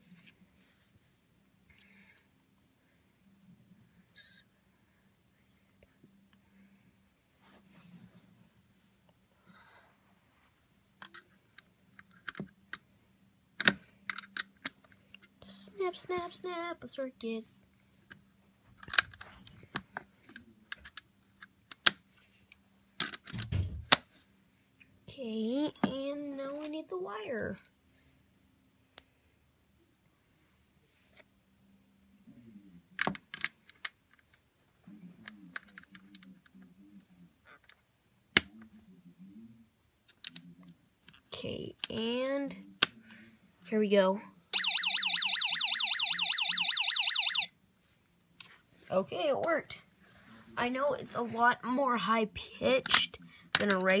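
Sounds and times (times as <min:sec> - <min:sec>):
plastic parts snapping into place: 0:23.0 - 0:24.0.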